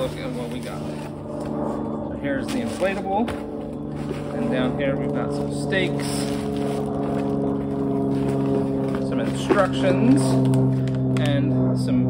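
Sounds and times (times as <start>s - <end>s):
motor droning: 0.0s - 12.0s
plastic packaging rustling: 2.5s - 5.2s, 6.0s - 11.0s.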